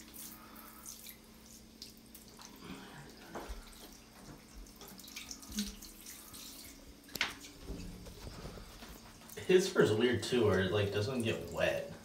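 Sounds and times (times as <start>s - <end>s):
shower water on tiled floor: 0.0s - 12.0s.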